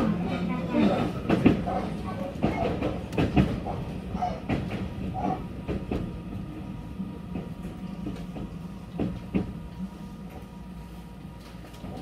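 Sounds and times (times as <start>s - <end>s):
train low running hum: 0.0s - 12.0s
train wheels clacking over rail joints: 0.8s - 6.2s, 7.3s - 9.6s.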